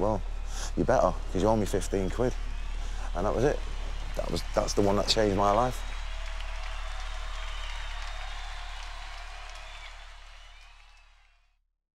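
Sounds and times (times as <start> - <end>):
steady low drone: 0.0 - 7.4.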